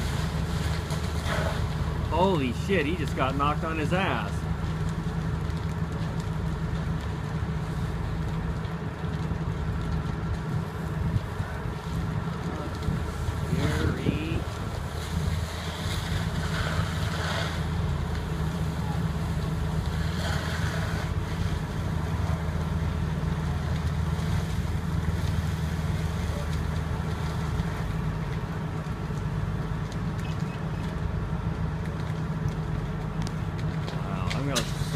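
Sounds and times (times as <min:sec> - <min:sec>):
engine drone driving pump: 0:00.0 - 0:34.9
wind rumbling on microphone: 0:04.5 - 0:31.6.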